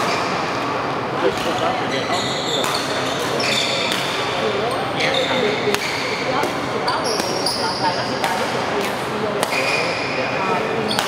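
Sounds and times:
hubbub of voices in hall: 0:00.0 - 0:11.0
shoes squeaking on court floor: 0:01.4 - 0:04.0, 0:04.6 - 0:08.3, 0:09.5 - 0:10.0, 0:10.7 - 0:11.0
rackets hitting shuttlecock: 0:02.6 - 0:04.4, 0:05.6 - 0:07.4, 0:08.2 - 0:09.9.

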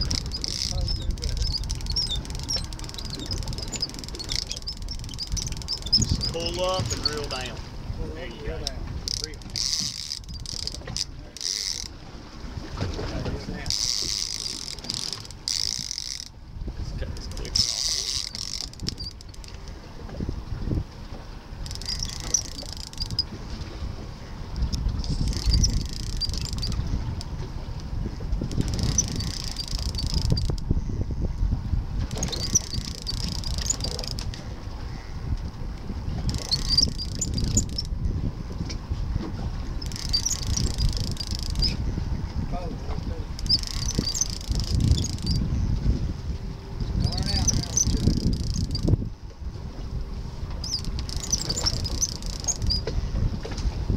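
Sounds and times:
fishing reel whirring: 0:00.0 - 0:07.5, 0:08.3 - 0:12.0, 0:13.6 - 0:16.4, 0:17.2 - 0:19.7, 0:21.6 - 0:23.4, 0:24.5 - 0:27.3, 0:28.4 - 0:30.7, 0:32.0 - 0:34.6, 0:36.1 - 0:38.6, 0:39.7 - 0:41.8, 0:43.3 - 0:45.6, 0:46.8 - 0:49.1, 0:50.5 - 0:52.9
boat rumble: 0:00.0 - 0:53.9
wind: 0:00.0 - 0:53.9.

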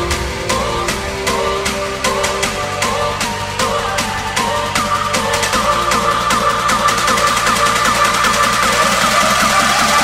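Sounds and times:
slowly rising tone: 0:00.0 - 0:06.3
electronic dance music build-up: 0:00.0 - 0:10.0.

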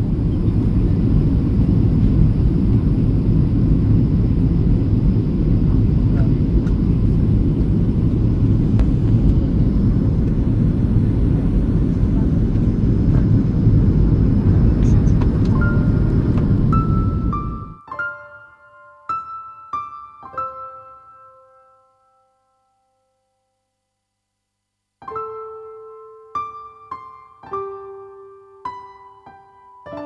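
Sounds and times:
airliner engine rumble: 0:00.0 - 0:17.8.

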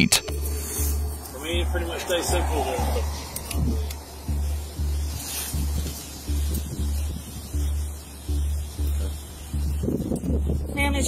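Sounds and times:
music with deep bass beat: 0:00.0 - 0:11.0.

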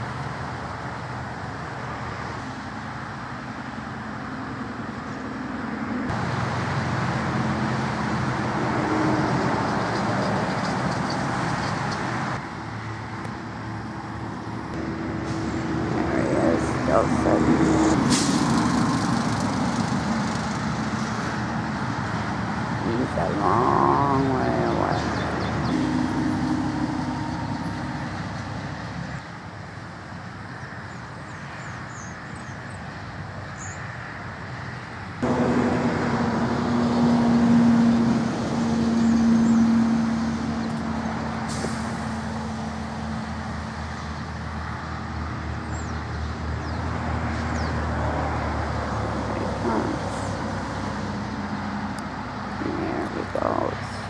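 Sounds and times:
engine and traffic hum: 0:00.0 - 0:54.0.

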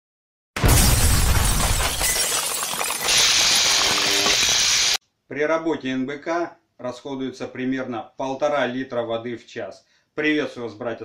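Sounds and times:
loud crash with low rumble: 0:00.6 - 0:02.0.

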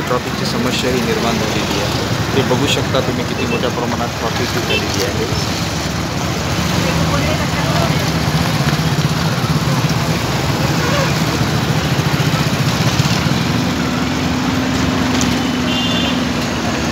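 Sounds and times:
road noise: 0:00.0 - 0:16.9
vehicle engines idling: 0:00.0 - 0:16.9.

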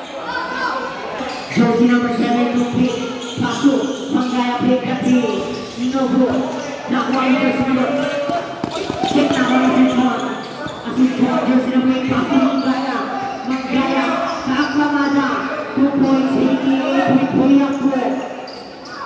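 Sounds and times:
basketball bouncing on concrete: 0:08.2 - 0:10.0.

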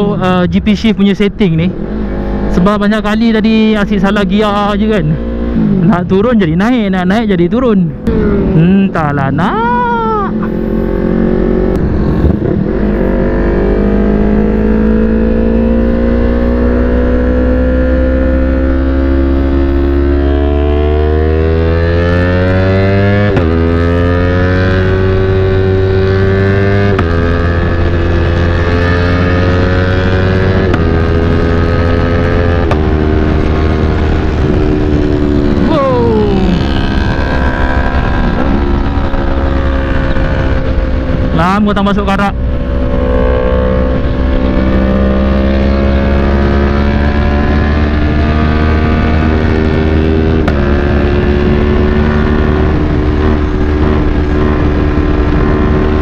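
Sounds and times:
motorcycle engine revving: 0:01.7 - 0:56.0
wind rush: 0:07.8 - 0:17.3, 0:24.7 - 0:56.0.

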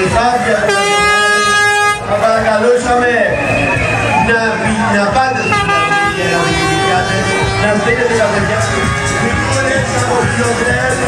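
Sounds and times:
street crowd voices: 0:00.0 - 0:11.0
long horn blast: 0:00.6 - 0:02.1, 0:05.4 - 0:09.3.

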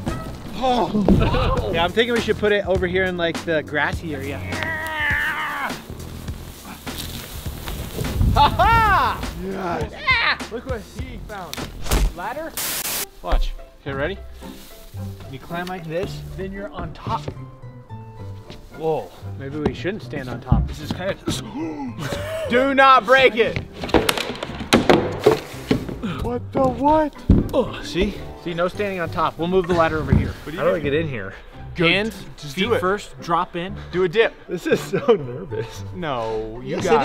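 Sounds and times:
rustling grass: 0:03.8 - 0:17.3, 0:18.2 - 0:19.6, 0:27.4 - 0:31.0.

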